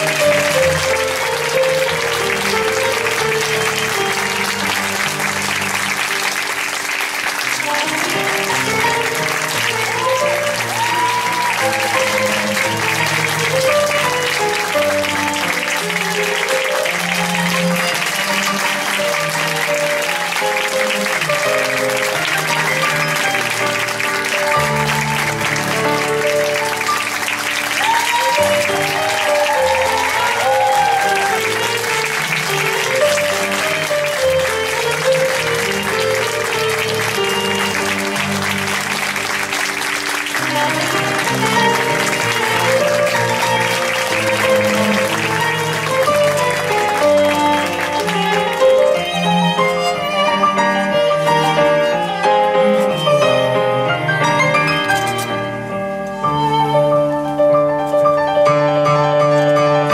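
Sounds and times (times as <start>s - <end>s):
audience applauding: 0.0s - 58.4s
instrumental music: 0.0s - 59.9s.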